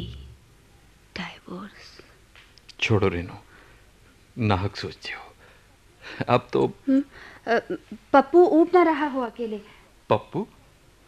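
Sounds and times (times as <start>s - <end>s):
person talking: 0.0s - 0.4s.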